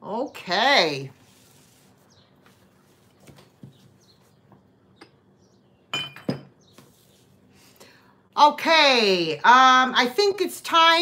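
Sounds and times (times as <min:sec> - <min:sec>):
dishware clinking on hard surface: 0:05.9 - 0:06.6.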